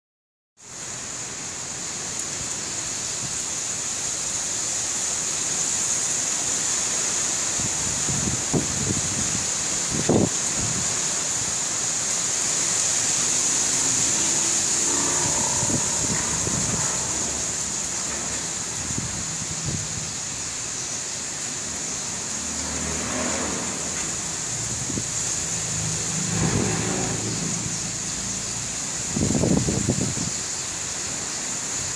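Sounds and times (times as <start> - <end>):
storm rushing noise: 7.0 - 31.9
low rumble: 13.7 - 20.1.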